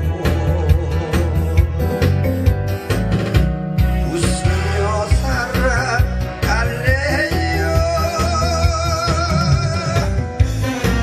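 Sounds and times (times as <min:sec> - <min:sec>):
pop backing music with drum beat: 0:00.0 - 0:11.0.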